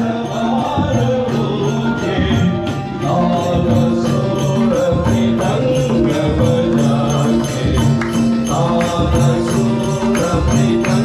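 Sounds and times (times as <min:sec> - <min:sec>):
hand drum beat: 0:00.0 - 0:11.0.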